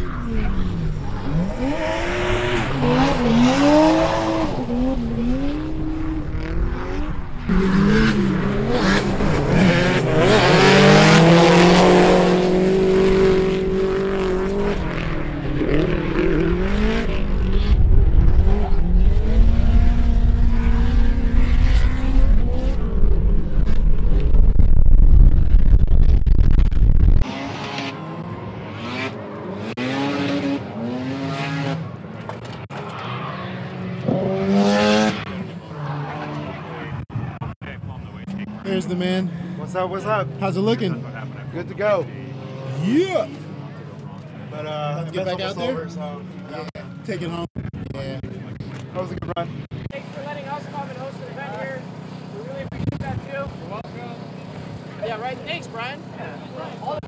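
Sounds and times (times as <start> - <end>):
car engines revving: 0.0 - 57.0
wind rumble on microphone: 17.0 - 27.2.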